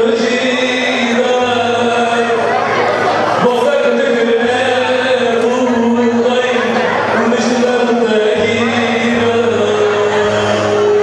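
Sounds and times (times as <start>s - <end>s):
person chanting: 3.4s - 11.0s.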